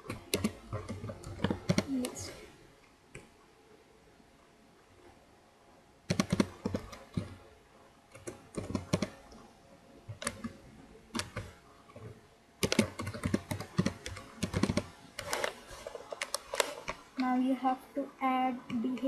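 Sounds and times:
typing on computer keyboard: 0:00.0 - 0:02.2, 0:06.1 - 0:07.3, 0:08.1 - 0:09.3, 0:10.2 - 0:11.6, 0:12.6 - 0:17.0.

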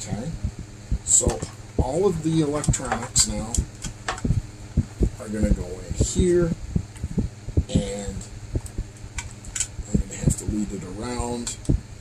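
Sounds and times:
steady low hum: 0:00.0 - 0:12.0
clicks and rustles of wires: 0:02.5 - 0:04.4, 0:08.2 - 0:10.5.

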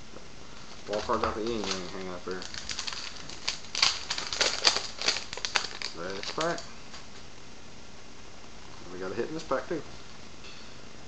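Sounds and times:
plastic wrapper crinkling: 0:00.5 - 0:07.2.

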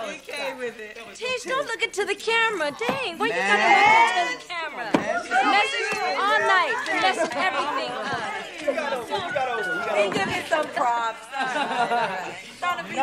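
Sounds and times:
people chattering: 0:00.0 - 0:13.0.

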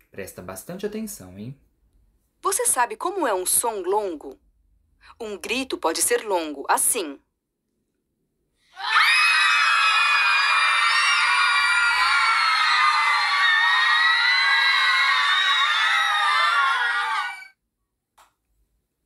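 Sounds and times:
crowd screaming: 0:08.7 - 0:17.6.

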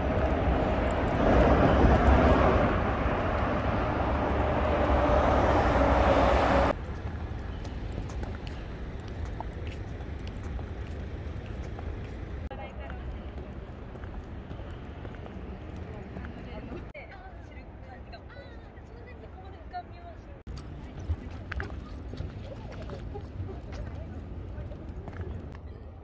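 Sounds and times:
vehicle running rumble: 0:00.0 - 0:16.9
city street ambience: 0:00.0 - 0:26.0.

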